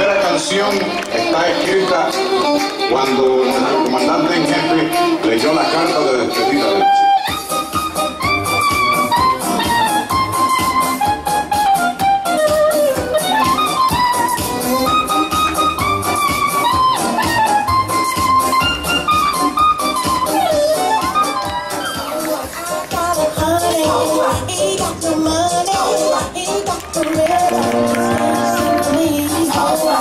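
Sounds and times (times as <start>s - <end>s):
brass band playing: 3.5s - 24.3s, 27.4s - 30.0s
lead horn long notes: 27.4s - 29.0s.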